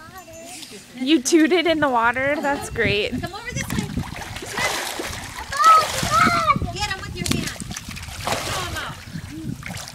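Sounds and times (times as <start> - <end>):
water splashing from swimmer: 3.6 - 9.9.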